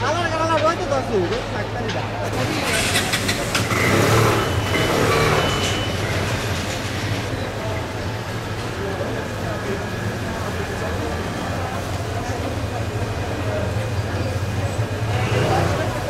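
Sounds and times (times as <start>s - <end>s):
people's voices: 0.0s - 16.0s.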